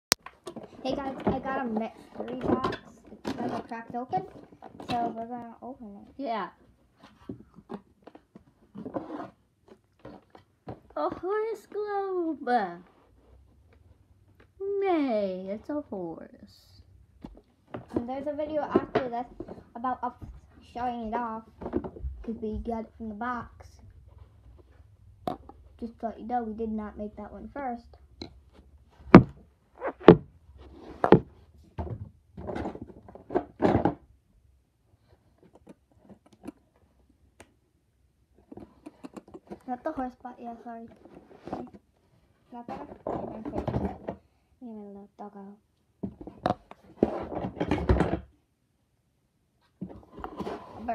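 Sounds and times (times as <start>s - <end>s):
sharp knocks and thumps: 0.2s - 5.4s, 17.2s - 24.2s, 28.2s - 34.1s
rustling and scraping: 0.3s - 11.8s, 12.4s - 14.6s, 17.2s - 26.2s, 26.9s - 34.0s, 34.9s - 37.0s, 38.3s - 44.3s, 46.0s - 48.3s, 49.6s - 50.9s.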